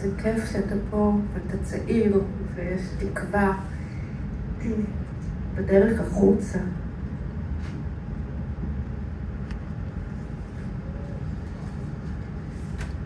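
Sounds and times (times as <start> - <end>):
amplifier hum: 0.0 - 13.0
room noise rumble: 0.0 - 13.0.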